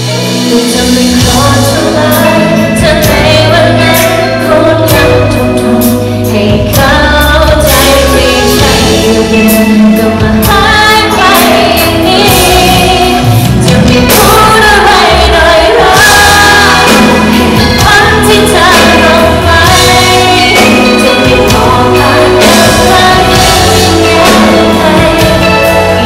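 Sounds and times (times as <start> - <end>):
backing vocalist singing: 0.0 - 26.0
electric guitar: 0.0 - 26.0
woman singing pop song: 0.0 - 26.0.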